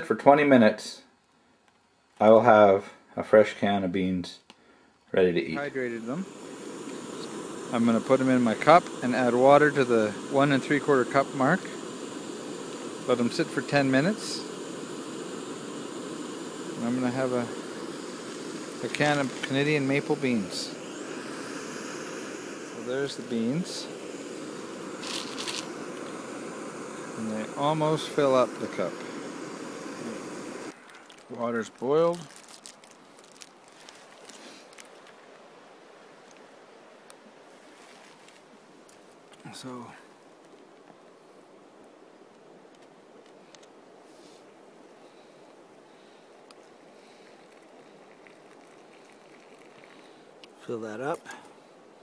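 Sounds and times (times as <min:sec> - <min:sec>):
low outdoor background noise: 0:00.0 - 0:52.0
beans fizzing and ticking: 0:05.8 - 0:35.2, 0:46.3 - 0:51.5
water pouring into a cup: 0:46.6 - 0:50.3.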